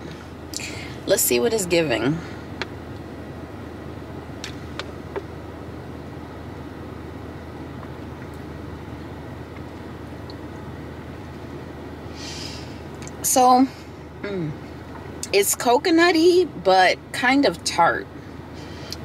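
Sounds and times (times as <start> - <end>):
car cabin rumble: 0.0 - 18.0.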